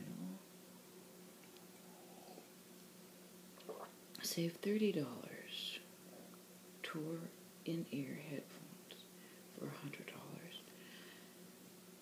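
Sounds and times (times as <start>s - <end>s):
faint steady hum: 0.0s - 12.0s
person whispering: 8.2s - 10.7s.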